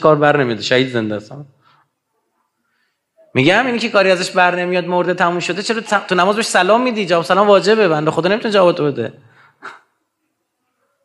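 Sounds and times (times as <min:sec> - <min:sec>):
man speaking: 0:00.0 - 0:01.6, 0:03.2 - 0:09.2.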